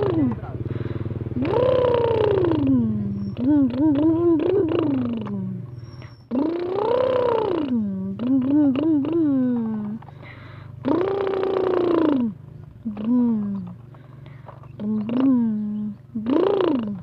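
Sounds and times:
child imitating truck engine: 0.0s - 5.7s, 6.3s - 17.0s.

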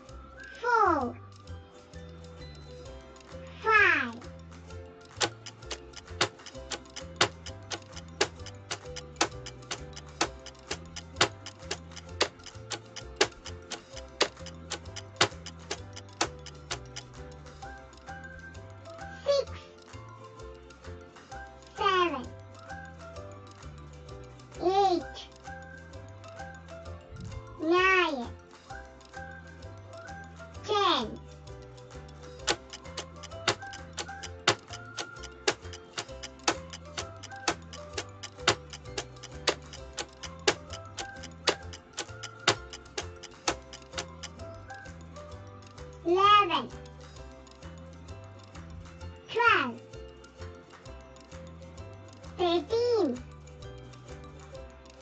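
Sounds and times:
countdown timer ticking: 0.0s - 55.0s
soft looping background music: 0.0s - 55.0s.

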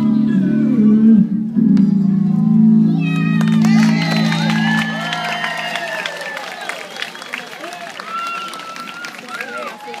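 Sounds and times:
crowd chatter: 1.8s - 10.0s.

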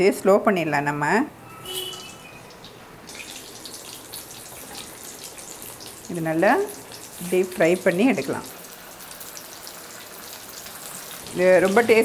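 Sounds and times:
potatoes sizzling in hot oil: 2.6s - 12.0s.

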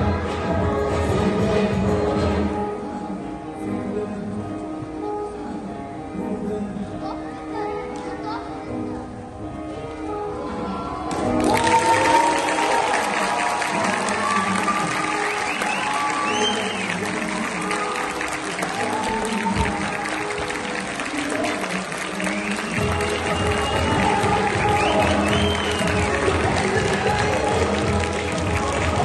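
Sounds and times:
music: 0.0s - 29.0s
audience applauding: 11.3s - 29.0s.

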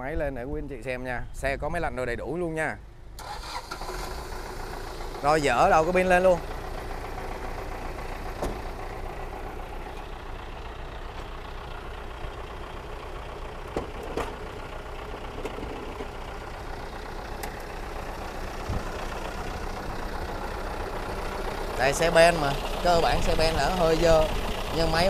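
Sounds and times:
diesel engine idling: 2.8s - 25.0s.

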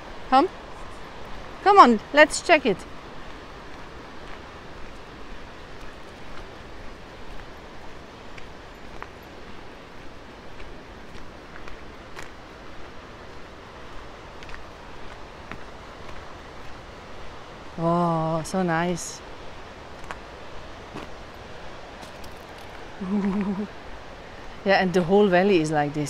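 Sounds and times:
steady outdoor hiss: 0.0s - 26.0s.

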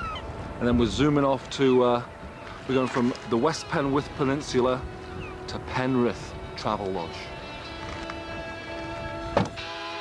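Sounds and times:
background music with held notes: 0.0s - 10.0s
car tailgate slamming shut: 9.3s - 9.6s.

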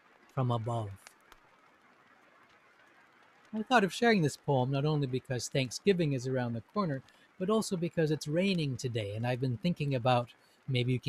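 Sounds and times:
faint rain: 0.0s - 11.0s.

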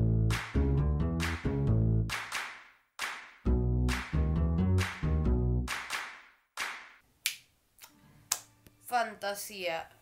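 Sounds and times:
finger snaps: 7.2s - 8.8s.

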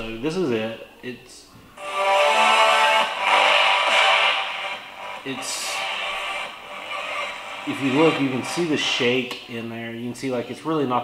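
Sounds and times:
video soundtrack music: 1.8s - 9.3s.

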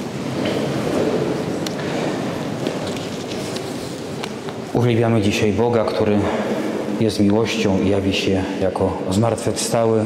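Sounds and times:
congregation rustling and shifting: 0.0s - 7.7s.

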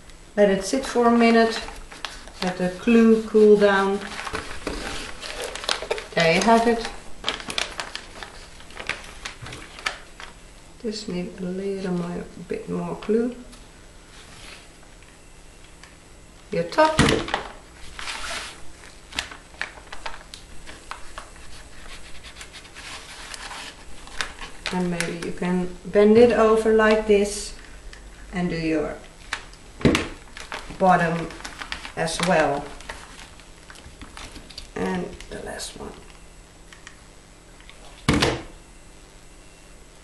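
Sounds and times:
paper rustling: 1.4s - 10.4s, 17.2s - 25.3s, 30.3s - 34.7s.

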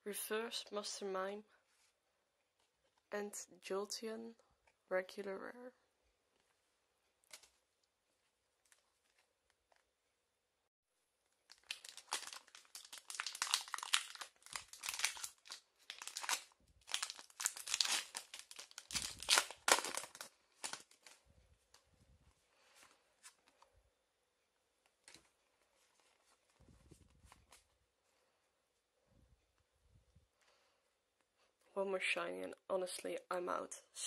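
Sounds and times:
foil wrapper tearing and crinkling: 11.5s - 21.2s
faint rustling: 24.8s - 30.8s.

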